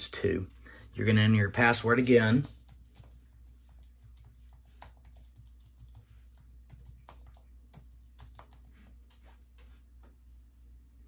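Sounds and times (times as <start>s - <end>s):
computer keyboard keystrokes: 2.4s - 8.8s.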